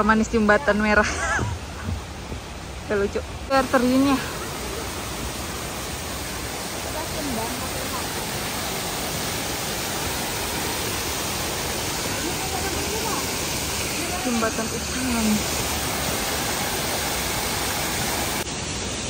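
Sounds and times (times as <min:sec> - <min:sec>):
waterfall rushing over rocks: 0:00.0 - 0:19.0.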